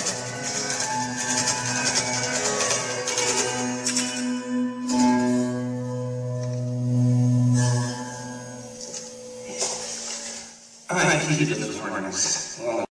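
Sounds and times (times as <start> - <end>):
electric guitar chords and notes: 0.0 - 10.8.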